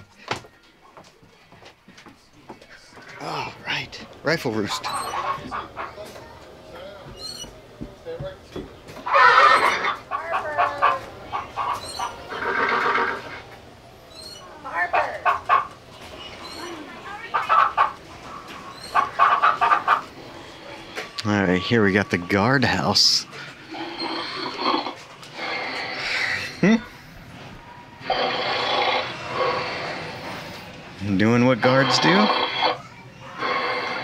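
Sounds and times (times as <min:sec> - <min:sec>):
hens clucking: 0:03.0 - 0:34.0.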